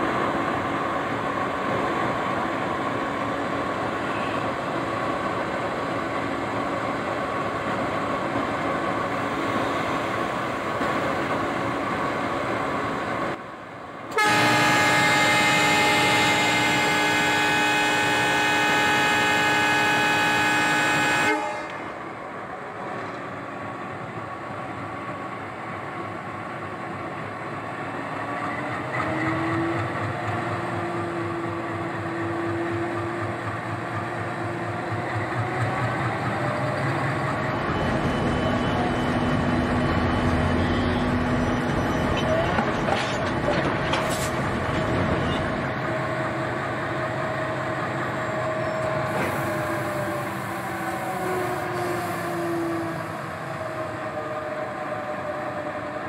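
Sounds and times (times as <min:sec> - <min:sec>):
train running rumble: 0:00.0 - 0:56.0
train horn chord: 0:14.1 - 0:22.0.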